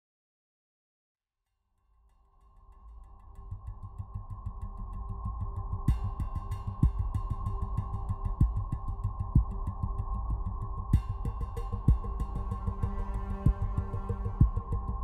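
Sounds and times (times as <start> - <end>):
instrumental music with pulsing beat: 5.9 - 10.0, 10.9 - 15.0.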